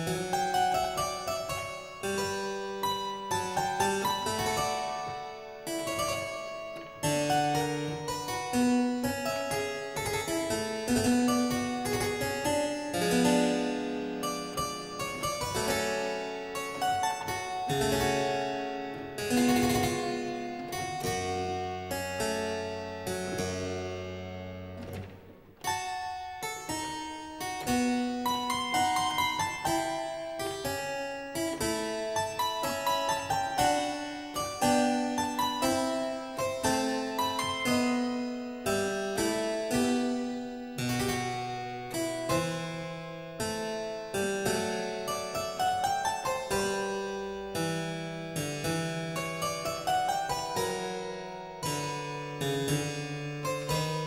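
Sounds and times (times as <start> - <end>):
solo harpsichord: 0.0 - 54.0.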